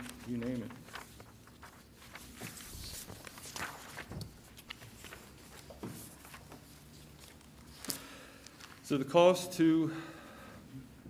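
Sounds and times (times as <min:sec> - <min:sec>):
paper rustling: 0:00.0 - 0:08.9.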